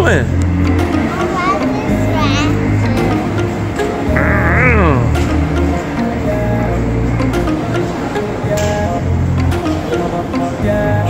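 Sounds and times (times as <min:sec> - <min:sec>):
steady low tones: 0:00.0 - 0:09.9
kiddie ride music: 0:00.0 - 0:11.0
child's high voice: 0:01.1 - 0:03.0, 0:04.2 - 0:05.1.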